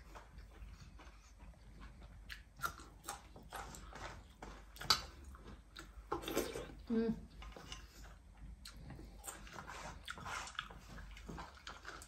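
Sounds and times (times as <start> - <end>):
soft chewing and mouth noises: 0.0 - 12.0.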